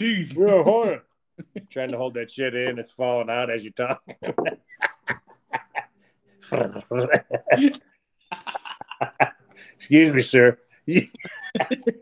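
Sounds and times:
man laughing hard: 0:06.5 - 0:09.4, 0:11.2 - 0:12.0.

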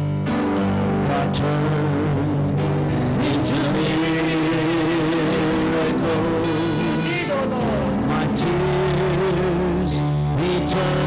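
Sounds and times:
sustained keyboard chords: 0:00.0 - 0:11.0
saxophone wavering note: 0:05.9 - 0:07.9.

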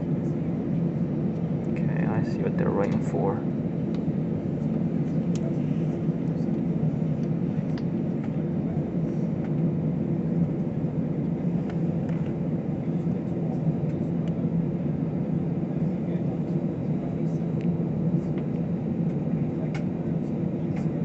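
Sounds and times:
jet engines droning in cabin: 0:00.0 - 0:21.0.

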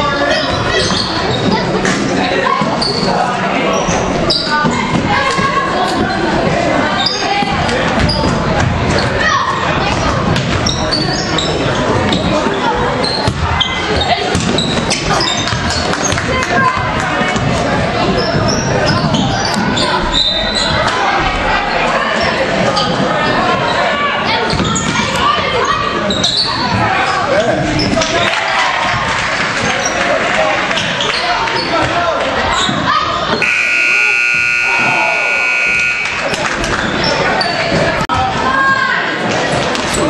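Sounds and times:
voices echoing in a gym: 0:00.0 - 0:40.0
scoreboard buzzer: 0:33.4 - 0:36.3.

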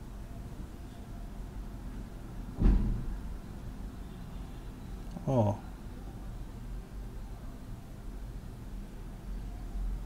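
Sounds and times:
steady low background hum: 0:00.0 - 0:10.0
brief low thump: 0:02.6 - 0:03.1.

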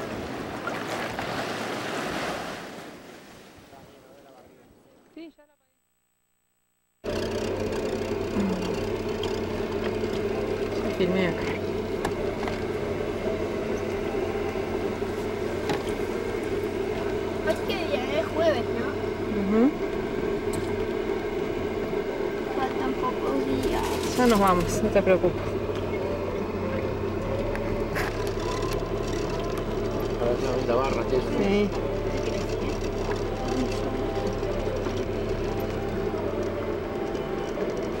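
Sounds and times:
steady mechanical drone: 0:05.8 - 0:38.0.

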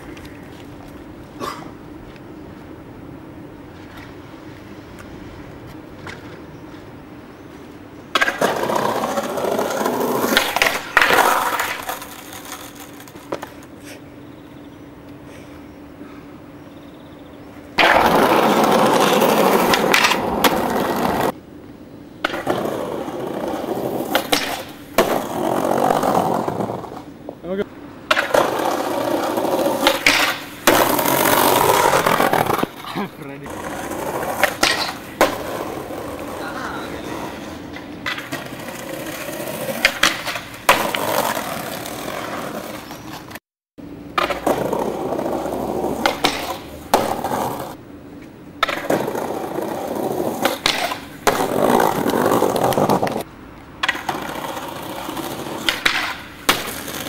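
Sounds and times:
skateboard wheels rolling on paving: 0:00.0 - 0:15.7, 0:16.4 - 0:57.0
skateboard popping and landing: 0:08.1 - 0:13.8, 0:17.8 - 0:21.4, 0:22.2 - 0:27.4, 0:28.0 - 0:43.4, 0:44.1 - 0:57.0.

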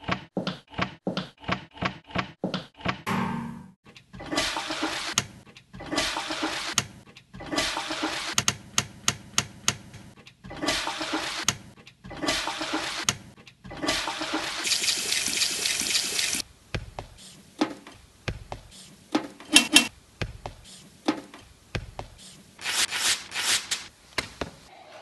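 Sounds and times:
toilet flush rushing water: 0:05.8 - 0:06.8, 0:13.8 - 0:16.4.

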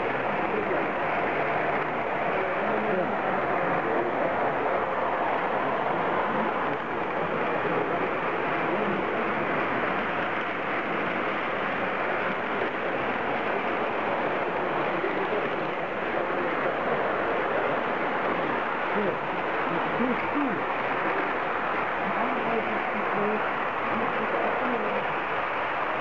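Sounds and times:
hum of busy hall: 0:00.0 - 0:26.0
model locomotive running on track: 0:00.0 - 0:26.0.

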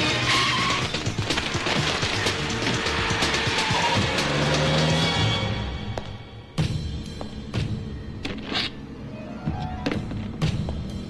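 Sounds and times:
film music: 0:00.0 - 0:11.0
car tyres squealing: 0:02.8 - 0:05.5.

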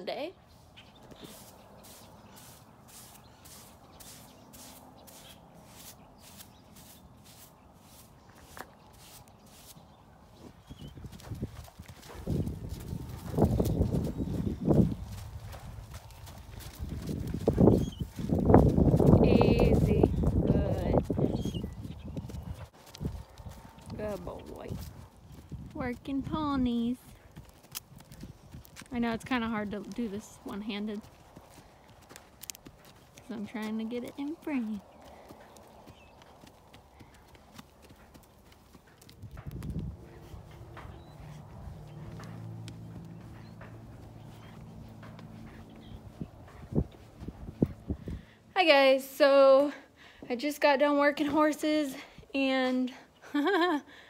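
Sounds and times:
horses' hooves on ground: 0:00.1 - 0:52.1.

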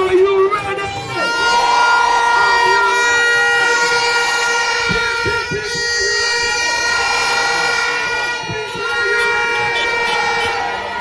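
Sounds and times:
noisy street crowd: 0:00.0 - 0:11.0.

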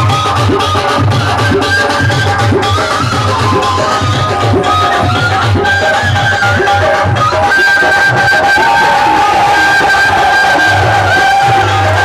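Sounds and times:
bamboo flute melody: 0:00.0 - 0:12.0
steady drum beat: 0:00.0 - 0:12.0.

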